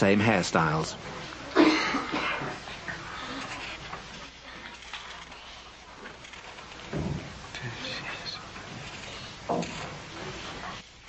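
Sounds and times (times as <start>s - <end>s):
cough: 1.5s - 2.6s.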